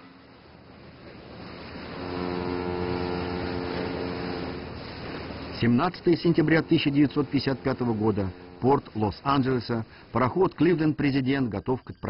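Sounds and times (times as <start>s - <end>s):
faint background hiss: 0.0s - 12.0s
ship horn long low blast: 1.3s - 9.2s.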